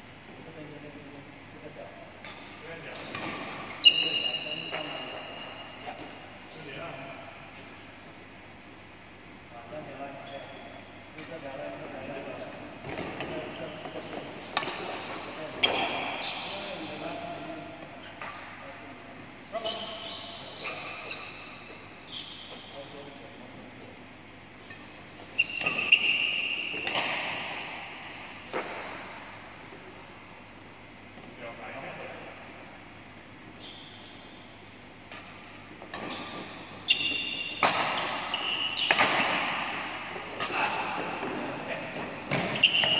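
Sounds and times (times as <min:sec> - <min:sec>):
shoes squeaking on court floor: 0:02.1 - 0:08.9, 0:09.6 - 0:30.2, 0:33.2 - 0:42.9
racket striking shuttlecock: 0:37.6 - 0:39.8.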